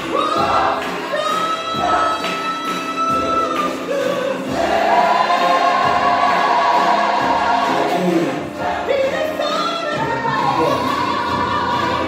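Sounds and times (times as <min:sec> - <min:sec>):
group singing gospel: 0:00.0 - 0:12.0.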